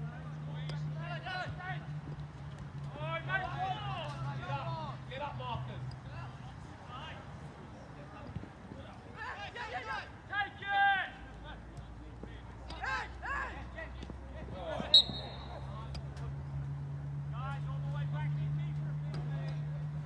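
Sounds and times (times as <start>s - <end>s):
players shouting: 0.2s - 2.2s, 2.8s - 7.3s, 8.8s - 16.7s
referee's whistle blast: 14.9s - 15.7s.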